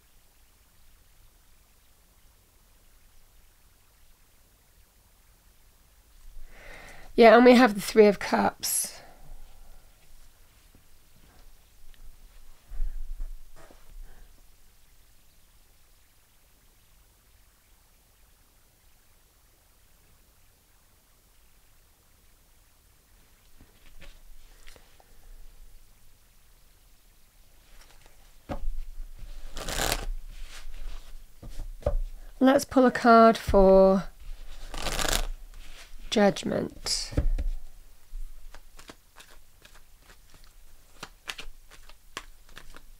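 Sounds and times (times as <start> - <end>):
card rustling and tapping on cloth: 27.8 - 32.1, 33.4 - 35.9, 37.1 - 42.9.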